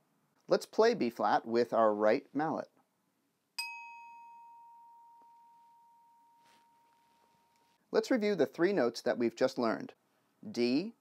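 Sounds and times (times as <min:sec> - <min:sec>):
glockenspiel bar ringing: 0:03.6 - 0:07.7.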